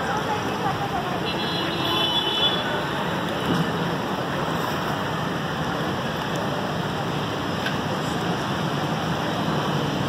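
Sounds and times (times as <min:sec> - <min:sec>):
traffic on a wet street: 0:00.0 - 0:10.0.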